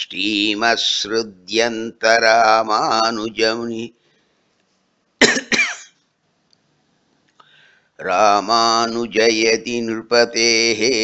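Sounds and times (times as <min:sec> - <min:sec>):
man coughing: 0:05.2 - 0:06.0.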